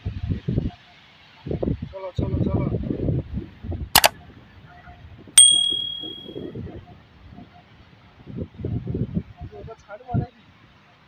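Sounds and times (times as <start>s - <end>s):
bright bell ding: 5.4s - 6.4s.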